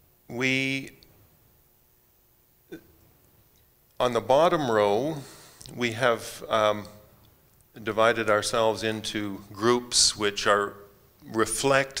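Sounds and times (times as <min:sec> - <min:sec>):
man speaking: 0:00.3 - 0:01.0, 0:04.0 - 0:07.0, 0:07.8 - 0:12.0.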